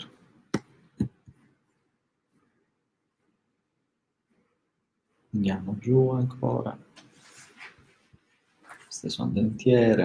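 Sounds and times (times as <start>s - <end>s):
man speaking: 5.3s - 6.9s, 8.7s - 10.0s.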